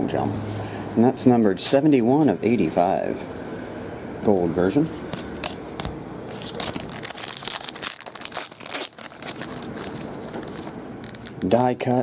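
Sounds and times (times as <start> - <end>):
foil wrapper tearing and crinkling: 6.3 - 12.0.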